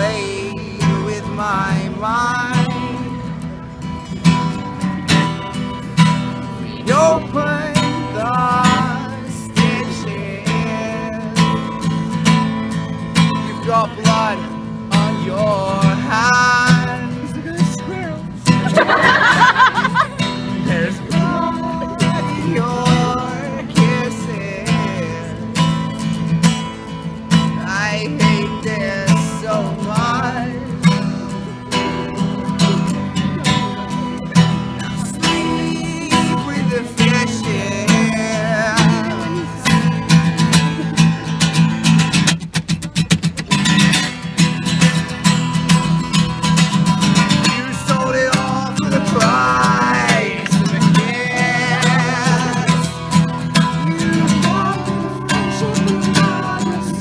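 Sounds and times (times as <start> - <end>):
man singing: 0.0 - 3.6, 6.4 - 12.5, 13.2 - 26.1, 27.3 - 41.5, 47.0 - 57.0
acoustic guitar strumming: 0.0 - 57.0.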